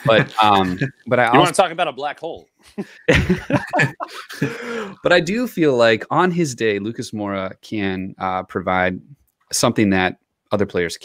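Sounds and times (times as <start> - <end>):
breathy laughter: 2.8 - 5.0.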